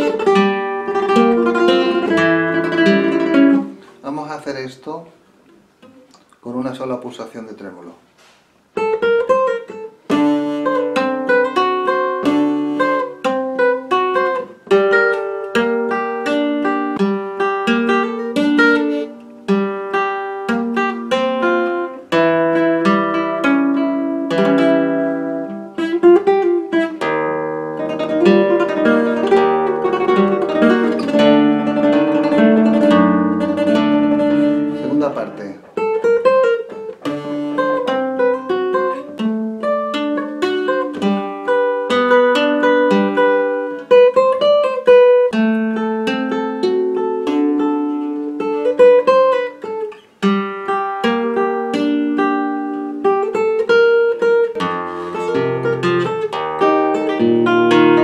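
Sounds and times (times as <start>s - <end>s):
flamenco guitar solo: 0.0s - 4.3s, 8.7s - 58.0s.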